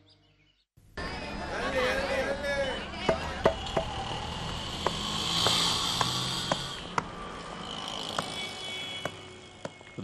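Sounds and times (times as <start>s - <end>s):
traffic noise: 0.8s - 10.0s.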